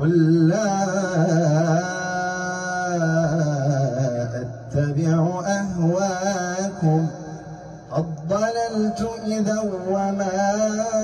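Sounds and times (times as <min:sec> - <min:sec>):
man chanting through a microphone: 0:00.0 - 0:11.0.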